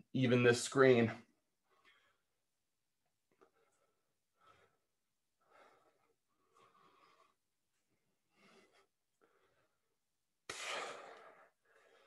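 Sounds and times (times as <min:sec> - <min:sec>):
man breathing hard: 0:03.4 - 0:12.0.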